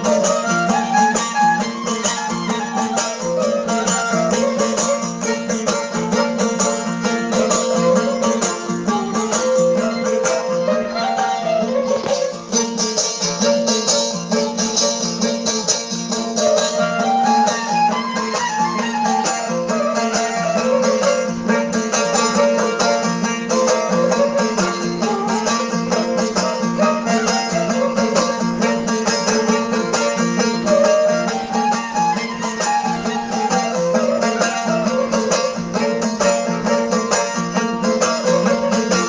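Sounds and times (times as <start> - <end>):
bowed fiddle melody: 0.0 - 39.0
plucked-string strokes: 0.0 - 39.0.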